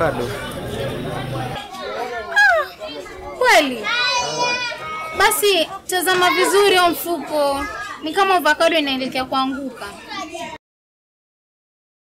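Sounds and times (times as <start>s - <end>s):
man talking: 0.0s - 1.6s
children calling out: 0.4s - 8.2s.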